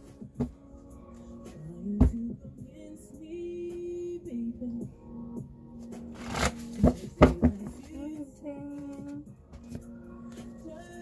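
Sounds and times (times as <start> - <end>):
soft background music: 0.0 - 11.0
index cards shuffled by hand: 6.2 - 7.0.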